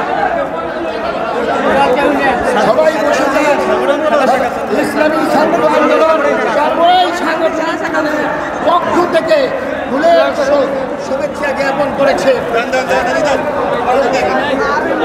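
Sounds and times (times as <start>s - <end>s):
crowd of men talking: 0.0s - 15.0s.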